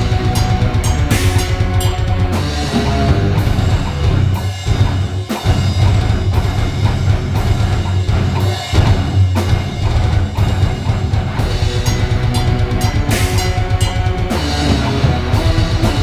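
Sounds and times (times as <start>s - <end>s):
bass guitar: 0.0s - 16.0s
drum kit: 0.0s - 16.0s
loud electric guitars: 0.0s - 16.0s.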